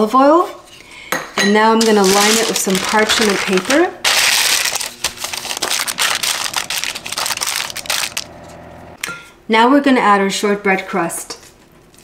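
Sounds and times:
parchment paper crinkling: 1.8 - 8.3.

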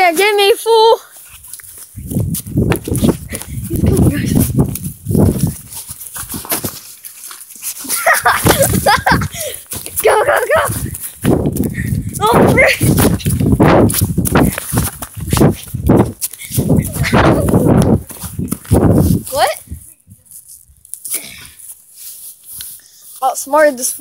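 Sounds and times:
phone microphone rustling and knocking: 2.0 - 6.8.

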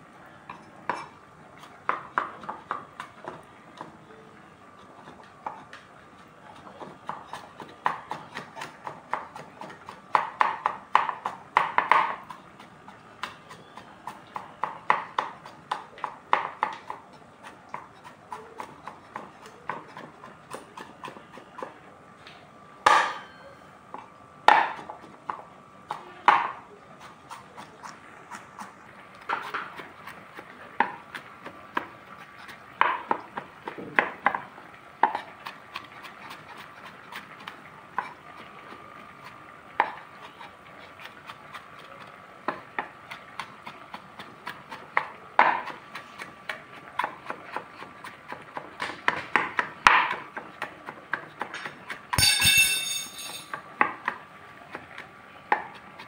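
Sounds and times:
cleaver chopping on wooden board: 6.8 - 12.4, 13.2 - 21.7, 22.8 - 23.2, 24.5 - 26.6, 32.8 - 34.4, 42.5 - 52.3.

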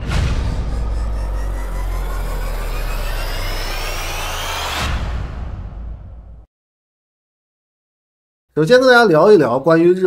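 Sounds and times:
deep rumble: 0.0 - 6.5
synthetic rising tones: 0.0 - 6.5.

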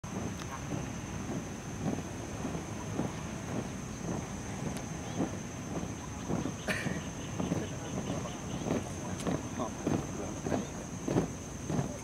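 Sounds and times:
wind on microphone: 0.0 - 12.0
boots marching in step: 0.1 - 12.0.

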